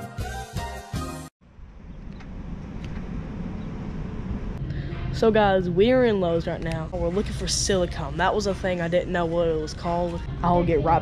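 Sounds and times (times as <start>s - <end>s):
low rumble of road traffic: 1.4s - 9.2s.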